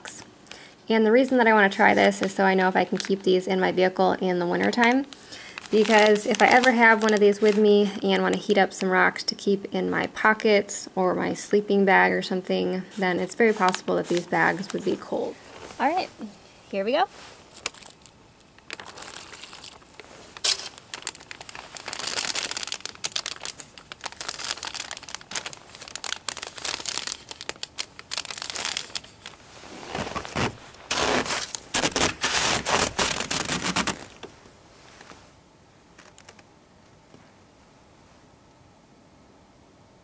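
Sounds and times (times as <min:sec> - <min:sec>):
plastic bag crinkling: 0:01.3 - 0:03.6, 0:04.4 - 0:08.3, 0:12.9 - 0:16.1, 0:17.1 - 0:34.3, 0:35.9 - 0:36.5.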